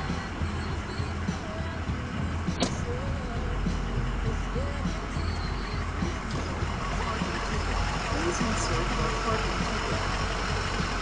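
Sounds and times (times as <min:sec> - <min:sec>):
truck engine idling: 0:00.0 - 0:11.0
sharp click: 0:02.6 - 0:02.9.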